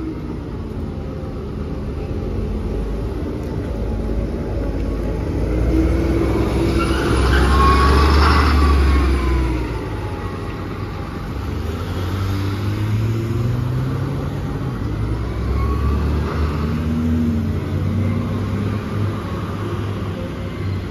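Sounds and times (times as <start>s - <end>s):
bus engine pulling away: 0.0s - 20.9s
passing cars: 0.0s - 20.9s.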